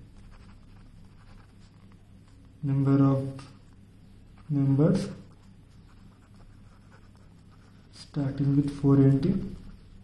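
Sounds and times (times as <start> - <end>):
pen scratching on paper: 0.2 - 1.8, 5.2 - 8.2.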